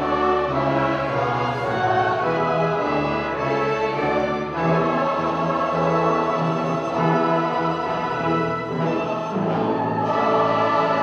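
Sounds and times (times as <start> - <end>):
choir singing with orchestra: 0.0 - 11.0.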